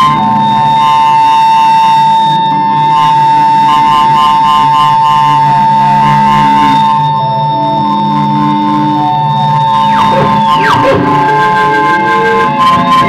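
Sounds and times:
electronic house music: 0:09.8 - 0:11.7.

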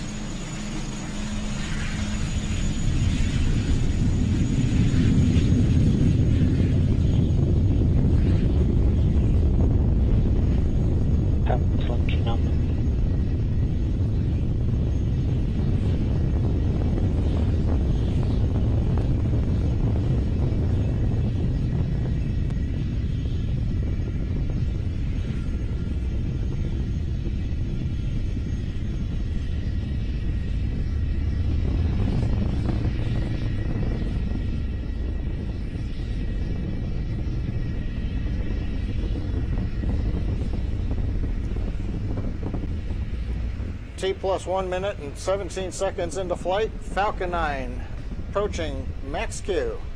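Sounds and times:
rocket engines rumbling: 0:00.0 - 0:49.9.

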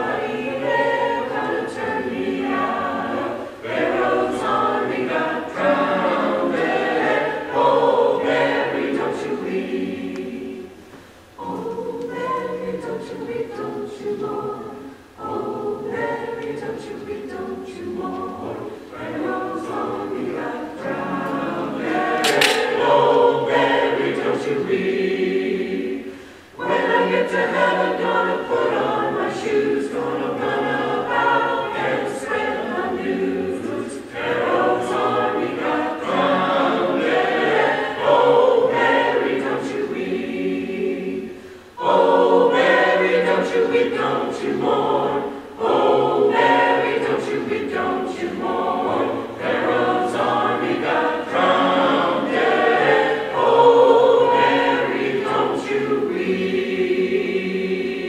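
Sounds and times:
mixed choir singing: 0:00.0 - 0:58.0.

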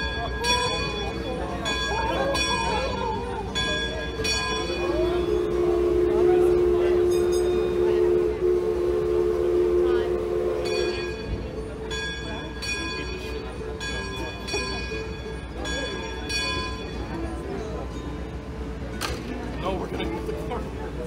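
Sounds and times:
steam whistle two-note blast: 0:04.8 - 0:11.4.

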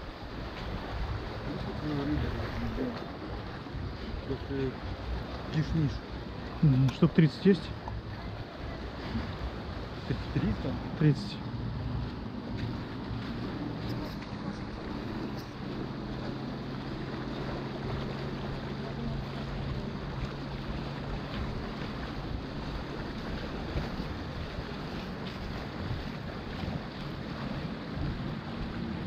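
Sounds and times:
distant motorboat engine drone: 0:00.0 - 0:29.0
sea lapping at rocks: 0:00.0 - 0:29.0
wind on microphone: 0:00.0 - 0:29.0.

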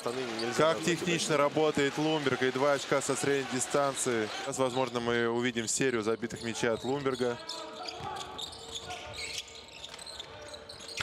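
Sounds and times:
shoes squeaking: 0:06.3 - 0:11.0.

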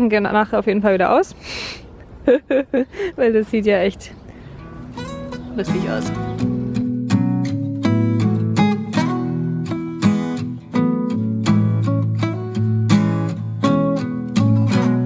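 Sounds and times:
acoustic guitar strumming: 0:04.5 - 0:15.0.

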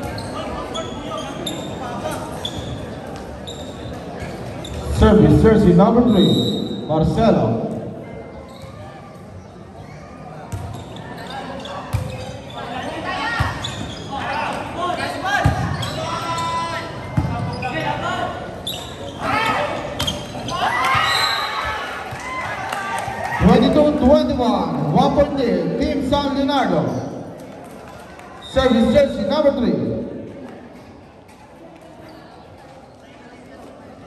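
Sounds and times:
crowd voices: 0:00.0 - 0:34.0.

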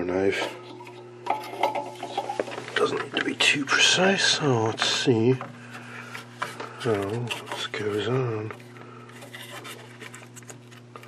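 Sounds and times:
plastic cover clicking and rubbing: 0:04.8 - 0:11.0.

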